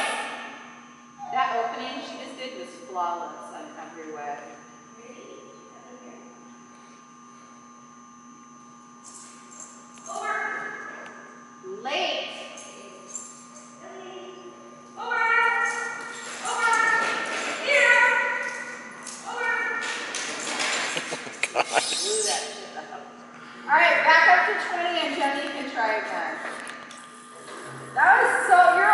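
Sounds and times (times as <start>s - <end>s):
steady low hum: 0.0s - 28.9s.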